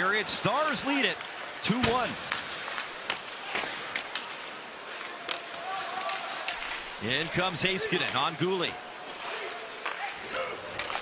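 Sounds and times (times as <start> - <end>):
skates on ice: 0.1 - 11.0
sticks clicking on puck: 1.2 - 6.9, 9.8 - 11.0.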